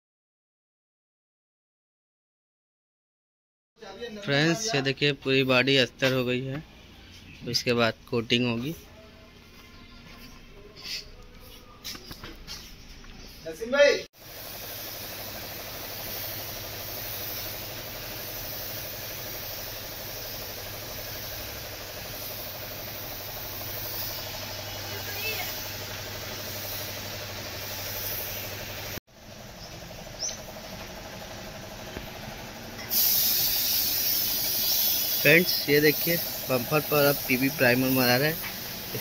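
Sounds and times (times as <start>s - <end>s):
paint spray gun hissing: 14.2s - 39.0s.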